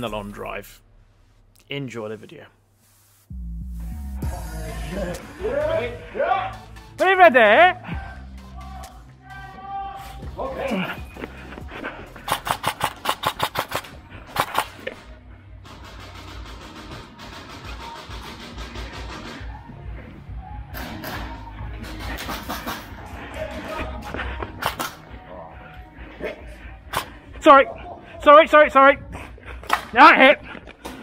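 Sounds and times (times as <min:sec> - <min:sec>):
background music: 0:00.0 - 0:31.0
airsoft rifle fire: 0:12.3 - 0:14.8.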